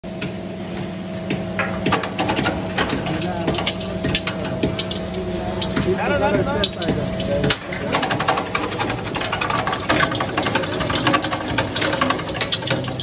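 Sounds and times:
sharp clicks and rattles: 6.6s - 13.0s.

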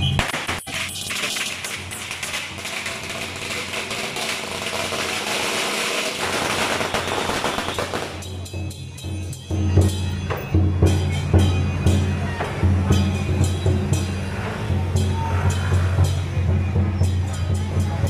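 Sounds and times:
firecrackers crackling: 0.0s - 8.8s.

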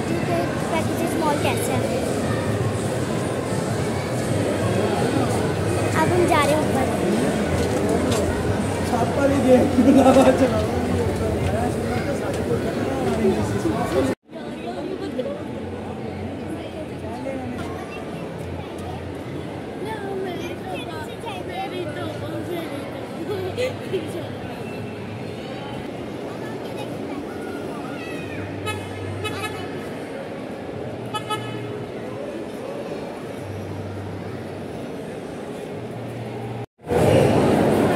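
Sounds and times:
chatter of voices: 0.0s - 37.9s
crowd murmur: 0.0s - 37.9s.

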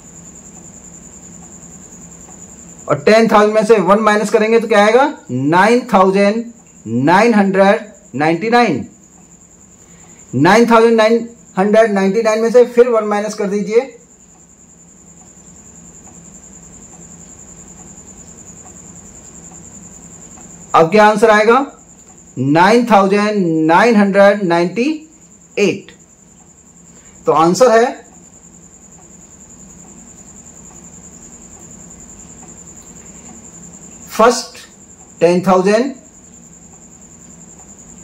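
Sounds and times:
high-pitched insect trill: 0.0s - 38.0s
low steady hum: 0.0s - 38.0s.

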